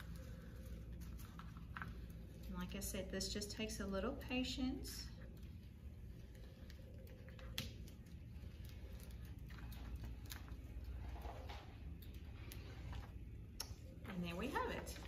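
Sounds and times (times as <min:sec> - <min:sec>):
paper backing peeling crackles: 0:00.0 - 0:03.0, 0:05.1 - 0:15.0
low steady hum: 0:00.0 - 0:15.0.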